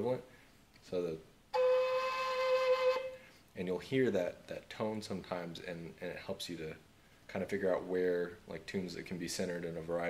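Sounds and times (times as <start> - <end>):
whistle holding one note: 1.5 - 3.3.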